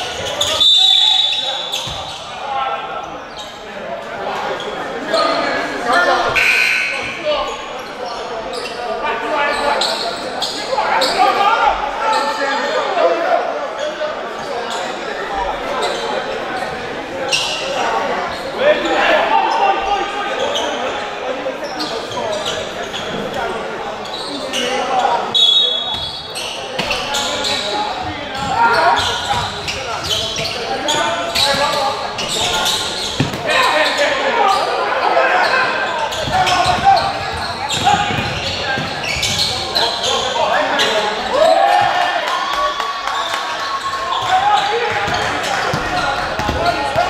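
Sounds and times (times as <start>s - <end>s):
voices calling out in gym: 0.0s - 47.0s.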